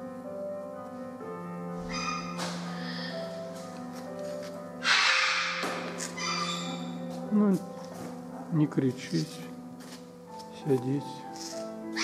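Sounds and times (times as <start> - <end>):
background music: 0.0 - 12.0
macaw squawking: 1.8 - 3.3, 4.8 - 7.0.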